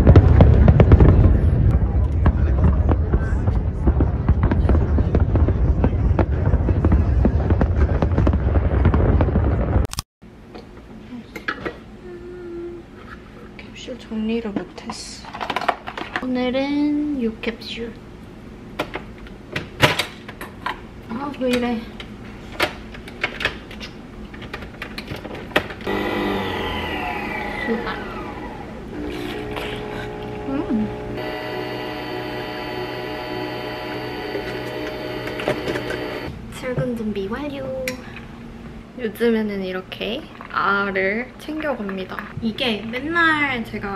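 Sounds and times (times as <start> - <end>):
low rumble of explosions: 0.0 - 9.9
fireworks crackling and popping: 0.0 - 10.0, 28.6 - 36.3
coffee machine motor hum: 25.9 - 36.3.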